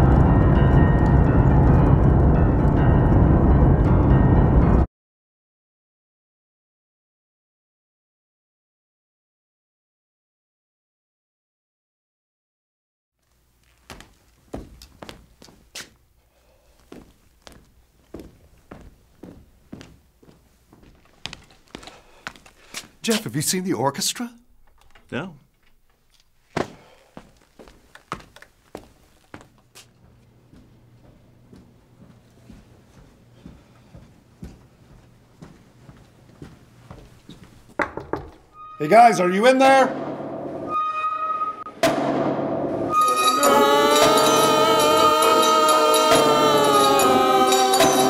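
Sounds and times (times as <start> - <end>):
orchestral music: 0.0 - 4.9, 38.6 - 48.0
footsteps on hard floor: 13.6 - 16.0, 16.8 - 23.0, 26.5 - 38.4
percussive hit: 39.9 - 40.8, 41.7 - 43.4.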